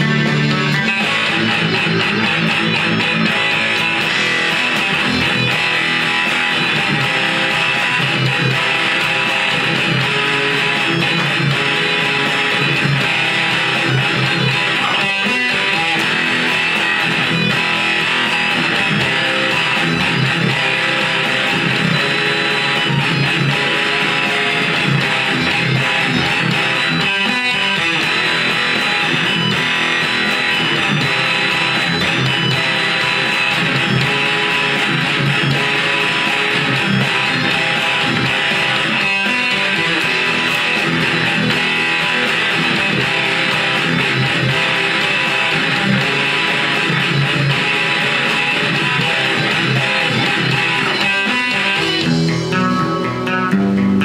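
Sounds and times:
electric rhythm guitar: 0:00.0 - 0:54.0.

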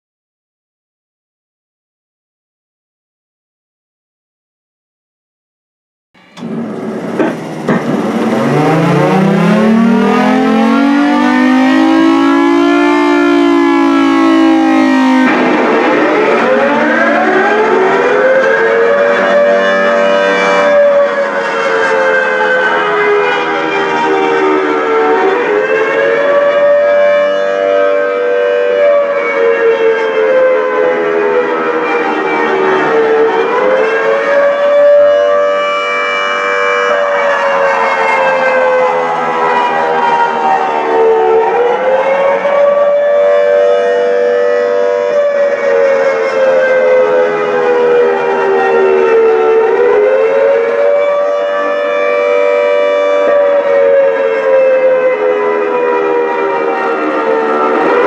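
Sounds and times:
warning siren wail: 0:06.4 - 0:58.0.

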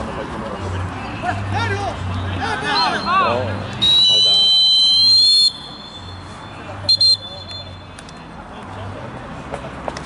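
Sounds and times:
referee's whistle blasts: 0:02.7 - 0:06.3, 0:06.9 - 0:07.8.

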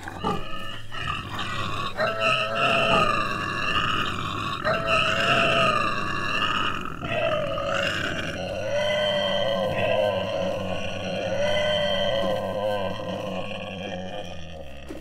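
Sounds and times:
growling low hum: 0:00.0 - 0:15.0.

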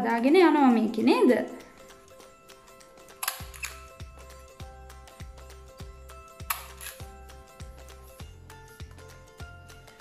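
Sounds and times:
music with a steady beat: 0:01.8 - 0:10.0.

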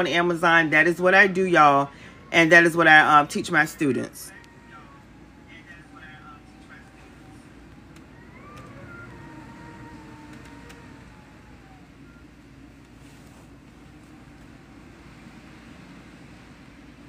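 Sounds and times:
distant siren wailing: 0:00.0 - 0:17.0
low background rumble: 0:00.0 - 0:17.0.

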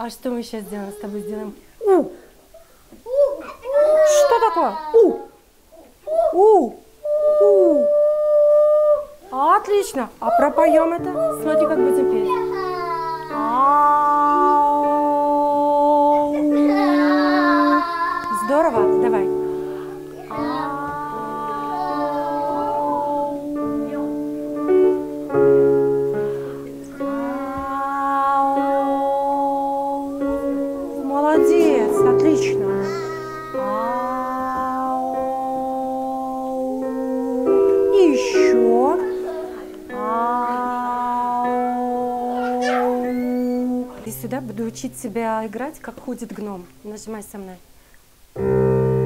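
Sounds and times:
digital piano chords: 0:09.2 - 0:46.9, 0:48.4 - 0:49.0
child singing: 0:11.0 - 0:18.3, 0:19.9 - 0:25.0, 0:26.9 - 0:31.1, 0:32.5 - 0:44.0.

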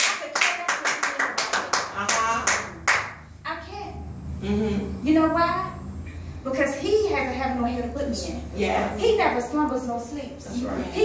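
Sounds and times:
quick hand clapping: 0:00.0 - 0:03.2.

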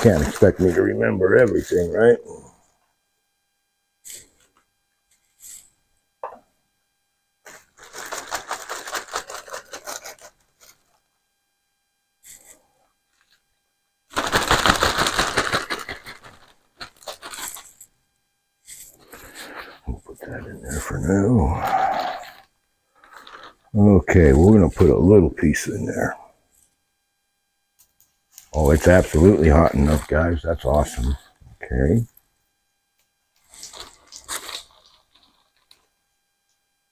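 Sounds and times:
plastic bags crinkling: 0:00.0 - 0:01.0, 0:07.5 - 0:10.3, 0:14.1 - 0:17.8, 0:23.0 - 0:23.5, 0:33.5 - 0:35.8.

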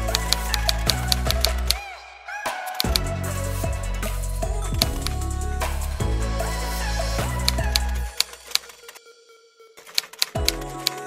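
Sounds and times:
background music: 0:00.0 - 0:11.0
keyboard keystroke clicks: 0:02.7 - 0:03.0, 0:09.8 - 0:11.0.

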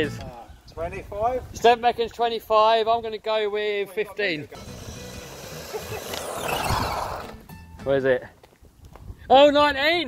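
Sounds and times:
rc truck passing by: 0:04.6 - 0:07.4.

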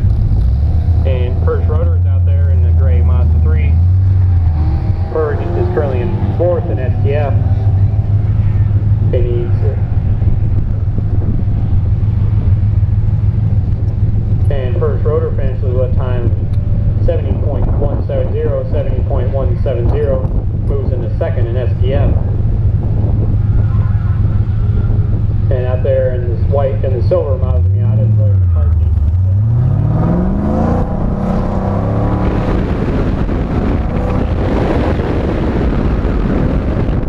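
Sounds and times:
car engine idling: 0:00.0 - 0:37.0
announcer's voice: 0:01.1 - 0:03.8, 0:05.1 - 0:07.6, 0:09.1 - 0:09.9, 0:14.5 - 0:16.4, 0:17.0 - 0:22.3, 0:25.5 - 0:29.0.

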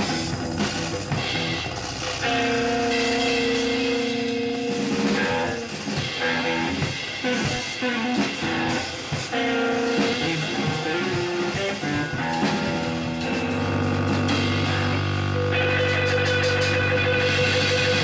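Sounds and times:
drum and percussion hits: 0:00.0 - 0:18.0
long held guitar tones: 0:00.9 - 0:18.0.

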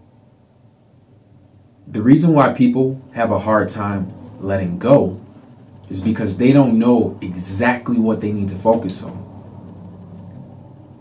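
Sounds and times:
studio room tone hum: 0:00.0 - 0:11.0.

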